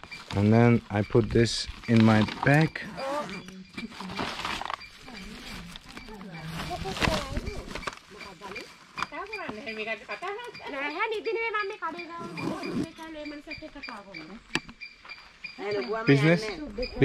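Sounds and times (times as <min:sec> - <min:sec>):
woman talking on phone: 0:02.9 - 0:14.5, 0:15.6 - 0:17.0.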